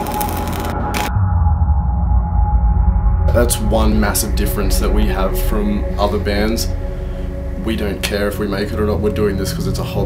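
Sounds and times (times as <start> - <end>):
dark ambient drone: 0.0 - 10.0
deep bass rumble: 0.1 - 10.0.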